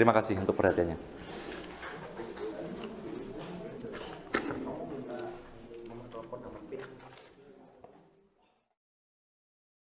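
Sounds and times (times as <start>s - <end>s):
people talking indistinctly: 0.0s - 8.4s.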